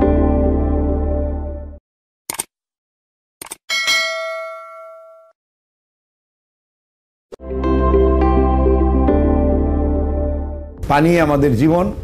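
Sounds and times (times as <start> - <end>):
notification bell ding: 3.7 - 5.4.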